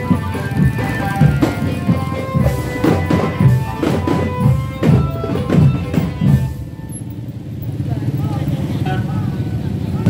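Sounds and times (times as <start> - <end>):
marching drums striking: 0.0 - 7.2
people's voices: 0.0 - 10.0.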